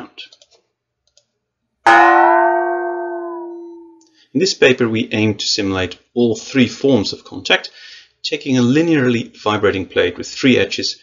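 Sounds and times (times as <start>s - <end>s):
gong ringing in water: 1.9s - 4.0s.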